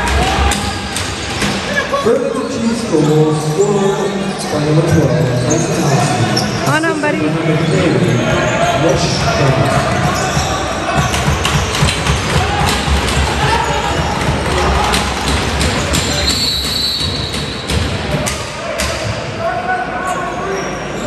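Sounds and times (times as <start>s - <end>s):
voices echoing in a hall: 0.0s - 21.0s.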